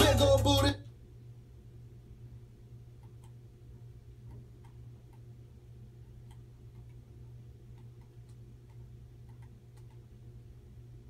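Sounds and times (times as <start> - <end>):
low hum: 0.0 - 11.0
faint irregular clicks: 3.0 - 3.4, 4.2 - 5.3, 6.0 - 10.2.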